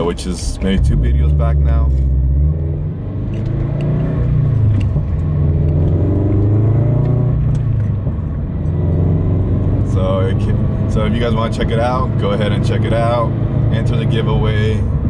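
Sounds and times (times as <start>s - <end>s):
car engine accelerating: 0.0s - 15.0s.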